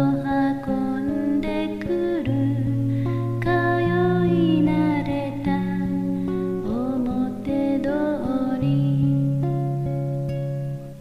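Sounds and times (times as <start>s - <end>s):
person singing: 0.0s - 9.5s
acoustic guitar picked: 0.0s - 11.0s.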